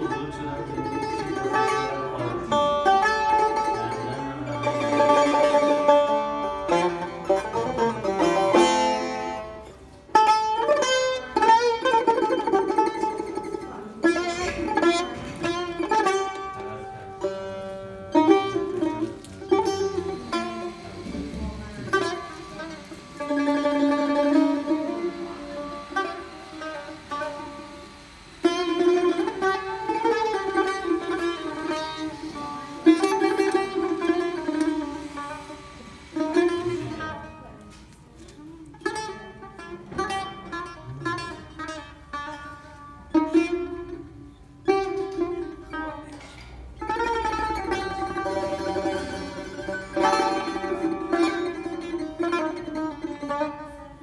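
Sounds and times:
plucked lute melody: 0.0s - 54.0s.

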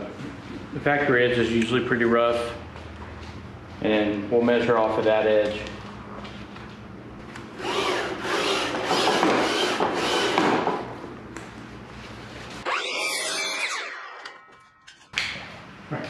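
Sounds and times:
miter saw cutting board: 12.6s - 14.7s.

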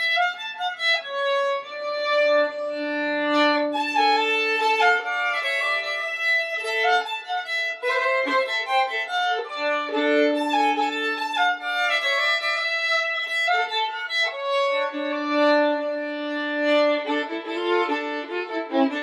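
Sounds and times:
fiddle tune: 0.0s - 19.0s.

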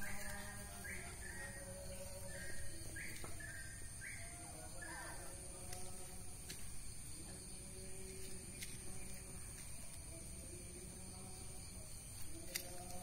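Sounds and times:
steady high-pitched whine: 0.0s - 13.0s.

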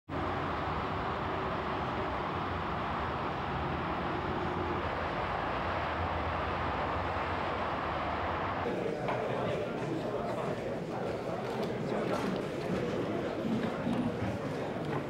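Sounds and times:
low hum: 0.1s - 8.7s.

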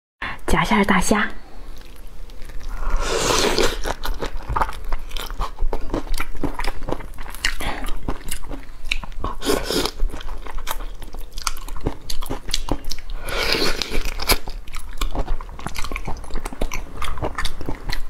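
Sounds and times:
wet chewing: 1.6s - 18.0s.

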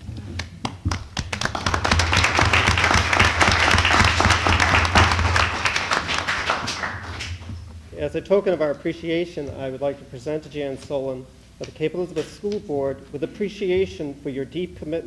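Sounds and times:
audience applauding: 0.6s - 7.5s.

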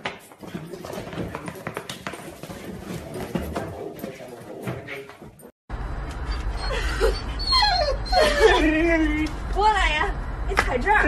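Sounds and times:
dog yipping and whining: 6.2s - 8.8s.

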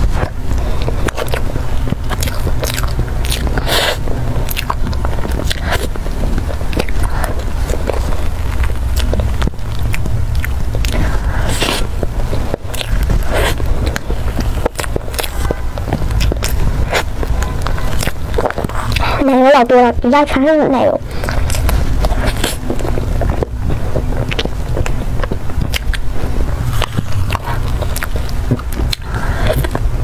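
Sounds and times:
wet mouthful eating: 0.0s - 19.5s, 21.0s - 30.0s
steady low hum: 0.0s - 30.0s
steady low rumble: 0.0s - 30.0s.

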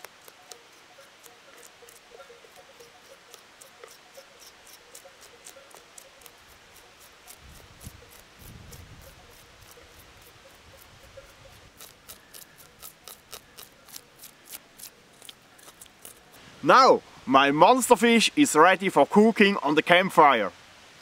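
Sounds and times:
knife scraping fish scales: 0.0s - 16.4s.

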